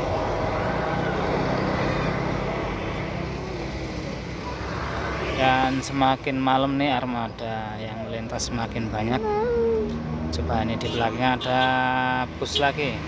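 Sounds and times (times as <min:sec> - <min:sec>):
bus diesel engine drone: 0:00.0 - 0:10.8
road noise: 0:00.0 - 0:13.0
man talking: 0:05.3 - 0:09.6, 0:10.4 - 0:13.0.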